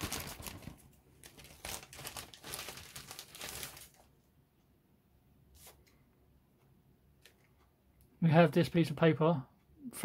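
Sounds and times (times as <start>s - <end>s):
plastic bag crinkling: 0.0s - 4.1s.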